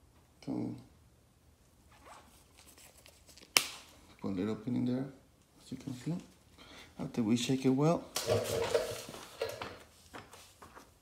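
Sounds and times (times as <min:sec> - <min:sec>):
faint rustling handling noise: 0:01.6 - 0:11.0.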